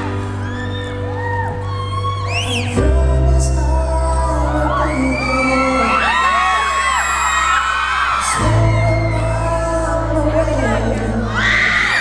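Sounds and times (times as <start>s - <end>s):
audience screaming and whooping: 0.0s - 3.2s, 4.0s - 12.0s
live pop song with singing: 0.0s - 12.0s.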